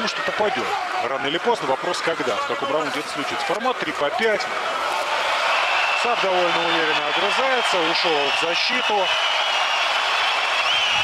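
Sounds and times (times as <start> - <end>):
crowd cheering: 0.0 - 11.0
high whistles: 5.5 - 11.0.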